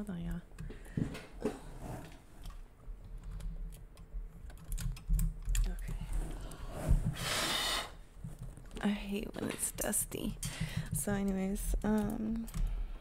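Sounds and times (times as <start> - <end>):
hands clicking and tapping at desk: 8.2 - 12.8.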